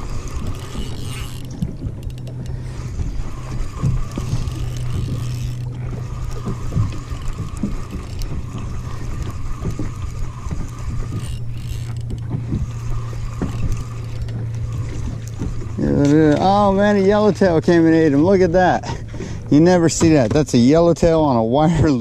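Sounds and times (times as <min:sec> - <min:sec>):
fishing reel cranking: 0:00.0 - 0:17.5
low hum: 0:00.0 - 0:22.0.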